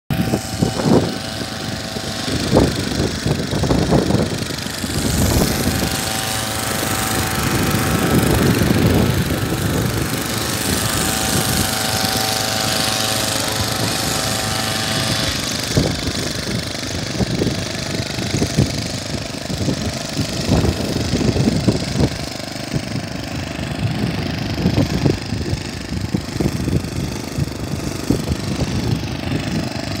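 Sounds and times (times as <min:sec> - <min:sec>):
sprayer engine drone: 0:00.1 - 0:30.0
steady whine: 0:00.1 - 0:30.0.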